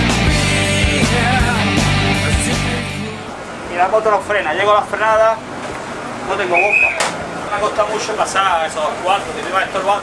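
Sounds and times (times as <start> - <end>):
rock music with drum beat: 0.0 - 3.4.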